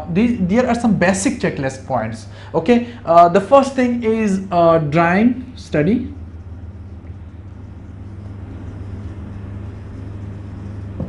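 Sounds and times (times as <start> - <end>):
room background hiss: 0.0 - 11.0
low hum: 2.2 - 11.0.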